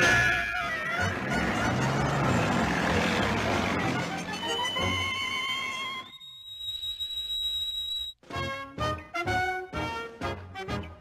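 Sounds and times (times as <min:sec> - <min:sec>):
orchestral cartoon music: 0:00.0 - 0:06.1, 0:08.2 - 0:11.0.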